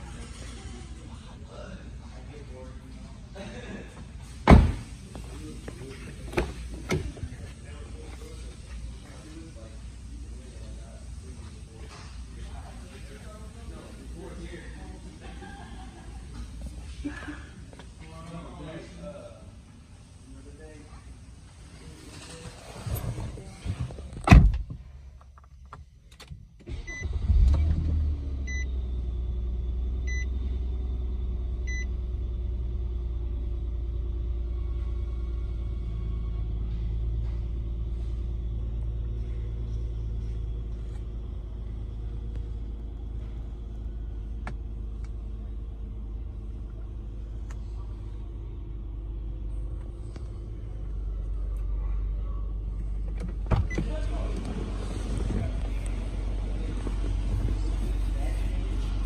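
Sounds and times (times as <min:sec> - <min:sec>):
car engine starting and idling: 0:00.0 - 0:59.0.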